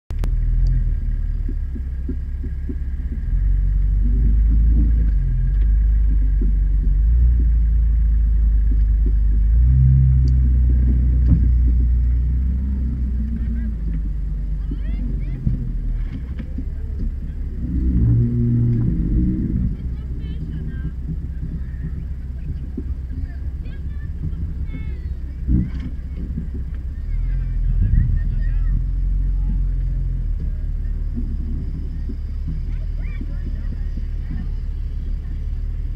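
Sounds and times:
engine rumbling and revving: 0:00.1 - 0:35.9.

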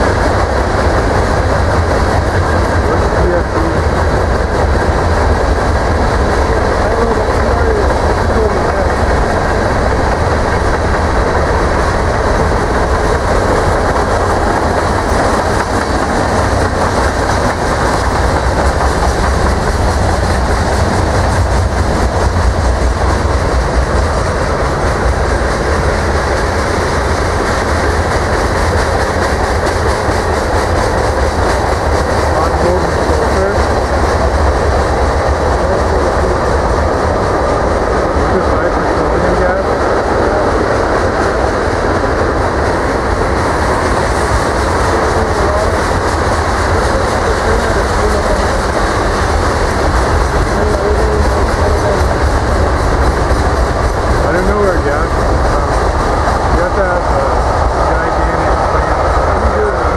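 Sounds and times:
clickety-clack over rail joints: 0:00.0 - 0:59.9
train wheels rumbling on rail: 0:00.0 - 0:59.9.

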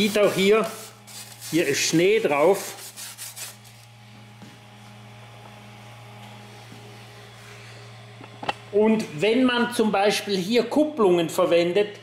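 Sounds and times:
refrigeration compressor humming: 0:00.0 - 0:12.0.

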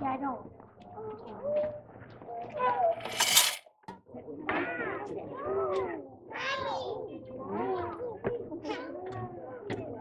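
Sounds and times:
short metallic clatter: 0:03.0 - 0:03.6.

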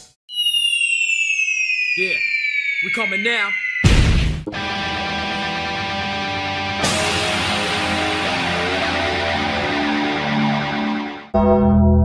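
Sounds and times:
high whistle-like gliding tones: 0:00.3 - 0:05.6.

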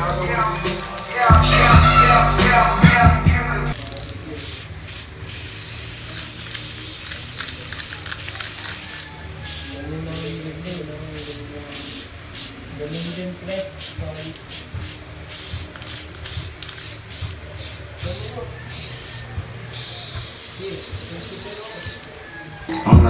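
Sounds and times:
spray paint can hissing: 0:00.0 - 0:22.1.

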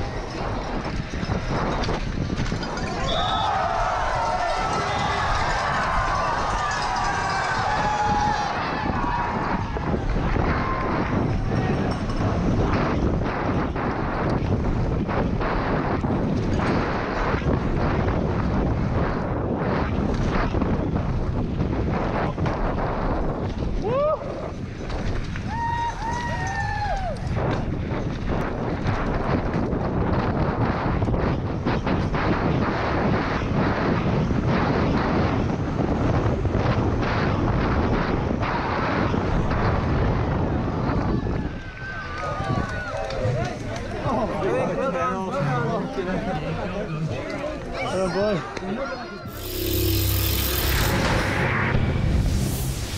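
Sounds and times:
mountain bike rumbling and rattling: 0:00.0 - 0:23.8, 0:24.5 - 0:41.6
wind on microphone: 0:00.0 - 0:48.6, 0:49.2 - 0:52.9
brief high-pitched sounds: 0:49.3 - 0:52.9.

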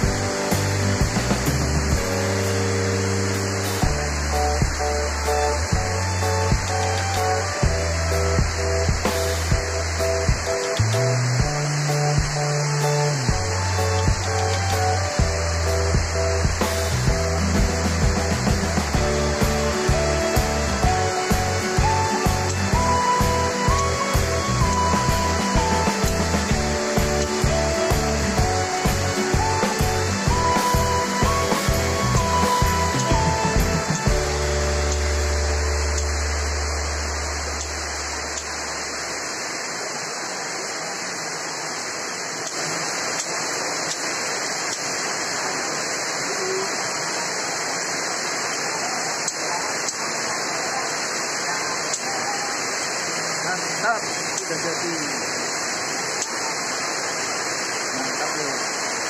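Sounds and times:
background music with bass notes: 0:00.0 - 0:37.2
heavy rain hiss: 0:00.0 - 0:59.0.

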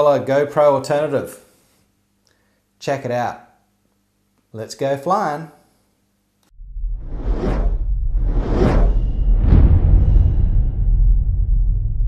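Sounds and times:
deep bass rumble: 0:06.5 - 0:12.0
whooshes: 0:06.6 - 0:12.0.

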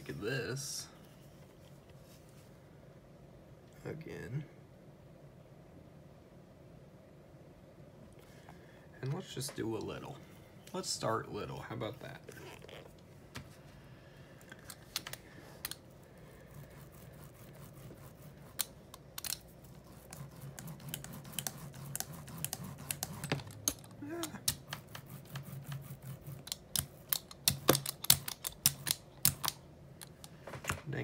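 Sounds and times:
sticky paint clicks: 0:26.4 - 0:30.3.

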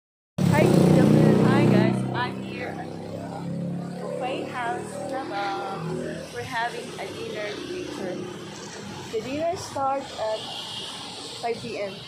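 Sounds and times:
people's voices: 0:00.4 - 0:08.2, 0:09.0 - 0:10.5, 0:11.4 - 0:12.0
vehicle engine humming: 0:00.4 - 0:12.0.

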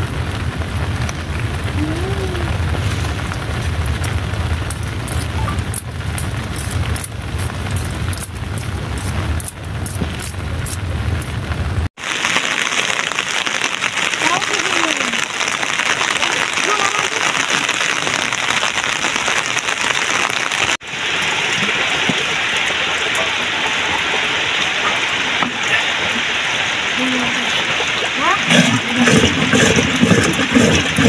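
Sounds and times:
low rumble: 0:00.0 - 0:11.9
heavy rain on an umbrella: 0:00.0 - 0:31.0.

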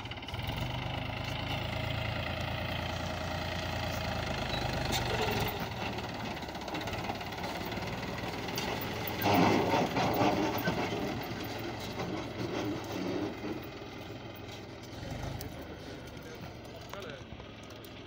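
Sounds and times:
tractor diesel engine under load: 0:00.0 - 0:18.0.

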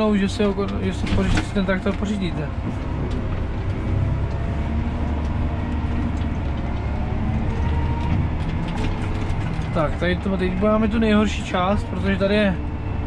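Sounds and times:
tractor diesel engine rumbling: 0:00.0 - 0:13.0.

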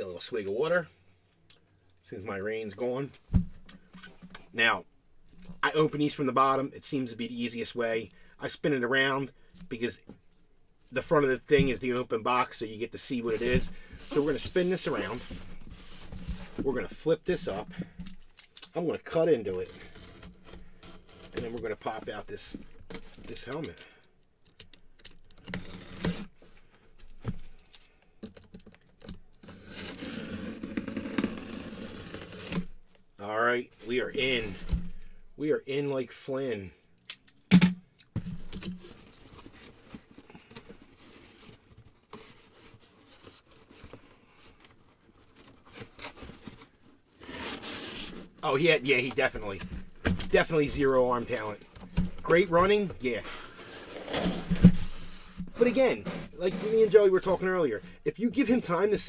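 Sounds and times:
cardboard scraping and rubbing: 0:13.0 - 0:18.0, 0:19.1 - 0:23.6, 0:25.5 - 0:26.6, 0:29.4 - 0:32.8, 0:33.8 - 0:35.2, 0:38.2 - 0:59.0.

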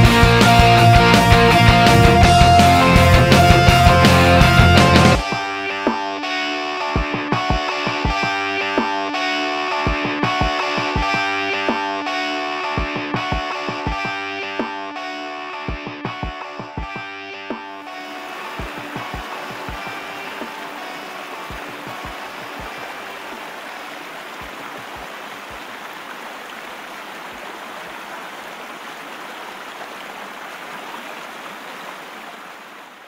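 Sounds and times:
distorted guitar rock music: 0:00.0 - 0:23.4
river rapids rushing: 0:18.0 - 0:33.0.

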